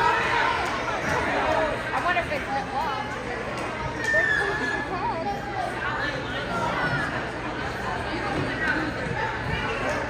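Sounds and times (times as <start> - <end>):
people shouting in a gymnasium: 0.0 - 2.0, 3.3 - 10.0.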